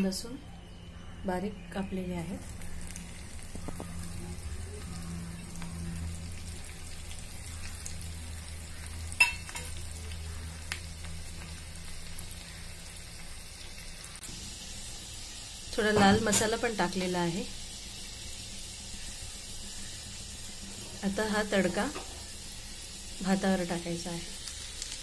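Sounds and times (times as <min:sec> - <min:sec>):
low hum: 0:00.0 - 0:23.8
garlic sizzling in oil: 0:01.8 - 0:25.0.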